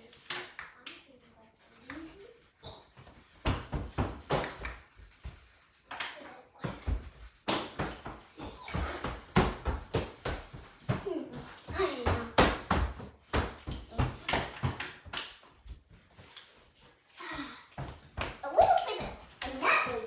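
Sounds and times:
child's voice: 0.0 - 2.9, 11.0 - 12.4, 17.2 - 17.7, 18.4 - 20.0.

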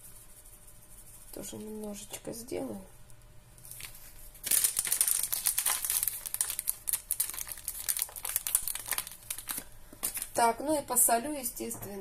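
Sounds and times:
spice packet crinkling: 3.7 - 10.4.

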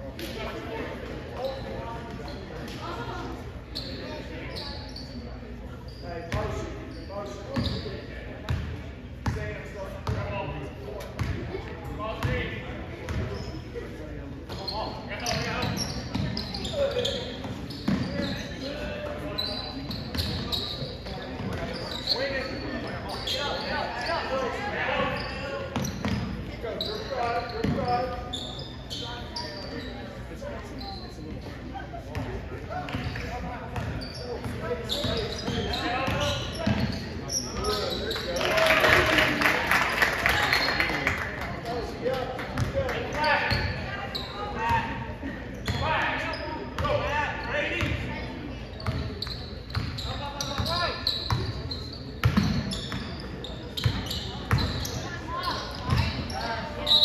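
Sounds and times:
sneakers squeaking: 0.1 - 57.0.

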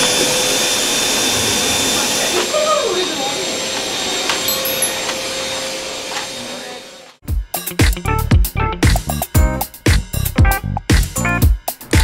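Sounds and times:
vacuum cleaner running: 0.0 - 7.2
vacuum nozzle on hard floor: 0.0 - 7.2.

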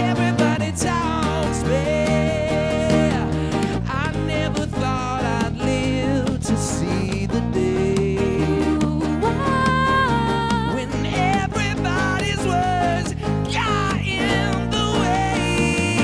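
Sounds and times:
drums: 0.0 - 16.0
electric guitar: 0.0 - 16.0
man singing: 0.0 - 16.0
strummed acoustic guitars: 0.0 - 16.0.

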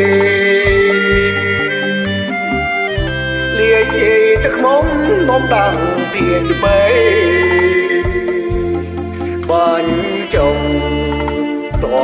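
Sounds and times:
man singing slow song: 0.0 - 2.1, 3.5 - 12.0
instrumental backing track: 0.0 - 12.0.

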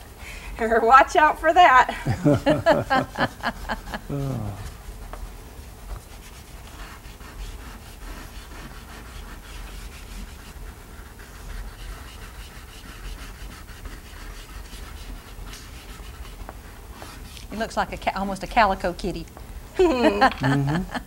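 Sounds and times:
low steady hum: 0.0 - 21.0
chalk pastels scratching on paper: 2.4 - 19.0.

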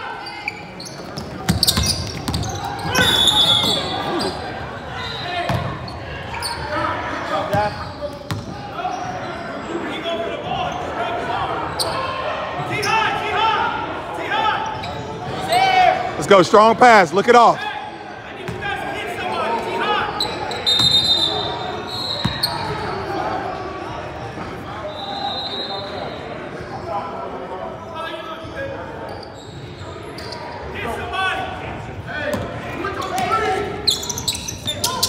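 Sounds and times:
high referee's whistle: 2.9 - 4.3, 5.0 - 5.5, 20.2 - 22.8, 24.8 - 26.3.

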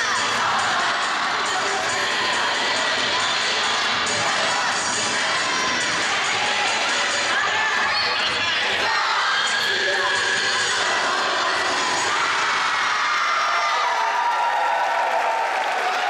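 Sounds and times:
crowd shouting and cheering: 0.0 - 16.0.

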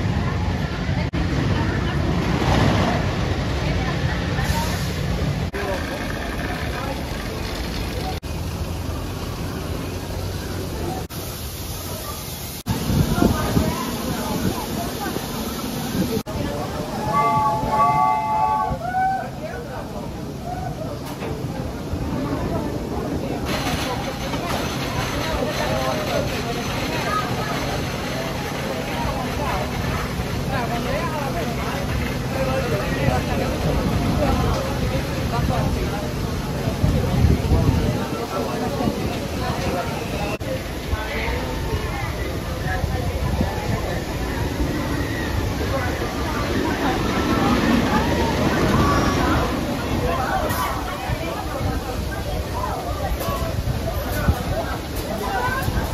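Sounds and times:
people talking: 0.0 - 55.9
roller coaster chain rattling: 5.5 - 8.8, 21.0 - 37.0, 43.1 - 55.9
indistinct voices: 12.8 - 55.9.

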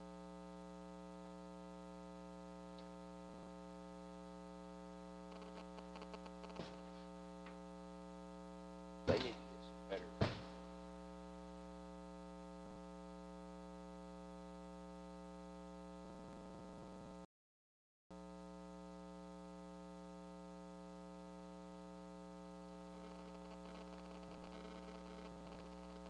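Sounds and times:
electrical mains hum: 0.0 - 17.3, 18.2 - 26.0.

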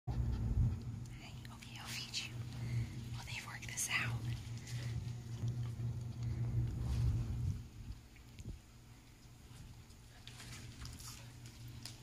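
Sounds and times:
low hum: 0.1 - 12.0
whispered speech: 1.1 - 2.4, 3.1 - 4.4.

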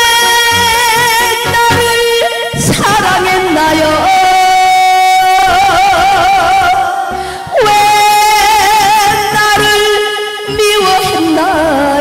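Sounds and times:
backing track: 0.0 - 12.0
woman singing into microphone: 0.0 - 12.0.

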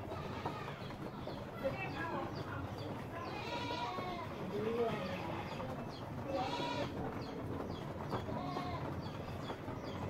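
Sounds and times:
drawn-out animal calls: 0.0 - 2.2, 3.1 - 10.0.

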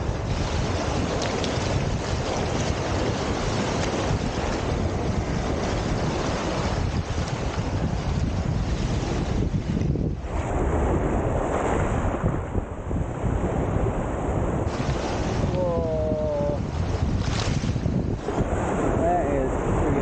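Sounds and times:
waves washing over stones: 0.0 - 12.3, 13.3 - 20.0
wind buffeting microphone: 0.0 - 20.0.

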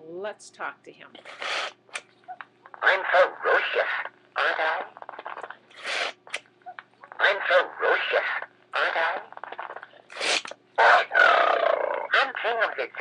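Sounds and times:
talking toy recorded voice phrases: 2.8 - 5.0, 7.1 - 9.4, 10.8 - 13.0.

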